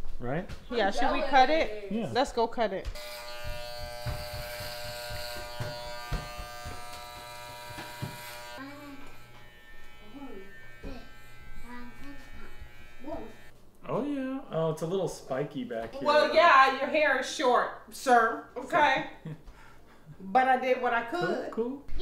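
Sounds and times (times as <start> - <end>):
electric hair clippers buzzing: 2.8 - 13.5.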